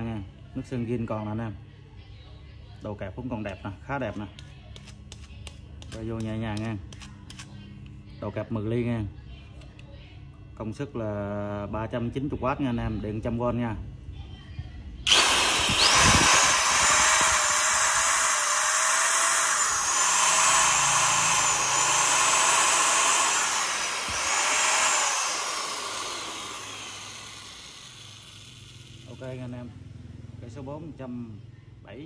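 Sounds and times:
electric drill motor whining: 0:15.1 - 0:29.4.

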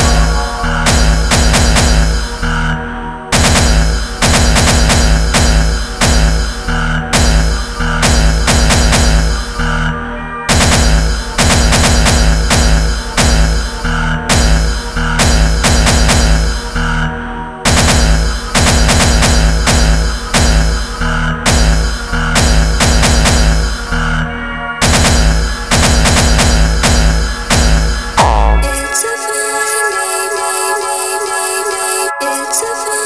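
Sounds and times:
pounding kick drums: 0:00.0 - 0:02.7, 0:03.3 - 0:09.7, 0:10.5 - 0:17.0, 0:17.7 - 0:24.1, 0:24.8 - 0:28.9
synth layers: 0:00.0 - 0:32.6.

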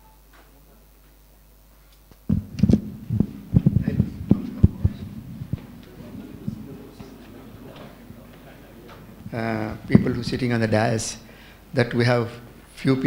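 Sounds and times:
low room hum: 0:00.0 - 0:13.0
microphone handling noise: 0:02.2 - 0:11.2.

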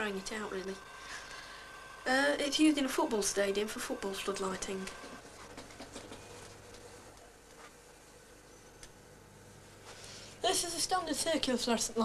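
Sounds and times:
fluorescent light humming: 0:00.0 - 0:12.0.

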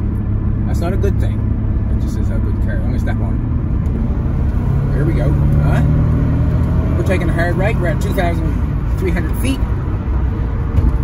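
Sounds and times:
car engine running: 0:00.0 - 0:11.0
road rumble: 0:00.0 - 0:11.0.

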